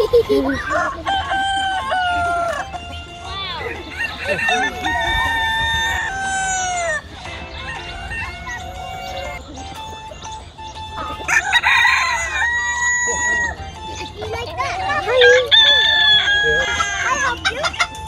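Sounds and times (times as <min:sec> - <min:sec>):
rooster crowing: 0:00.6 - 0:02.9, 0:03.7 - 0:09.4, 0:11.2 - 0:13.7, 0:15.2 - 0:17.8.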